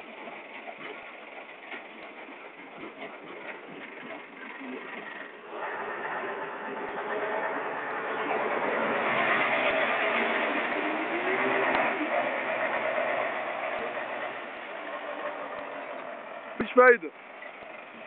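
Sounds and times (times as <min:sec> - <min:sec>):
diesel engine running under load: 0:00.0 - 0:18.0.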